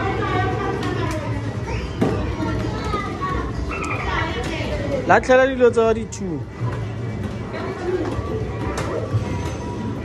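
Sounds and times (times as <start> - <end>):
children's voices and chatter: 0.0 - 10.0.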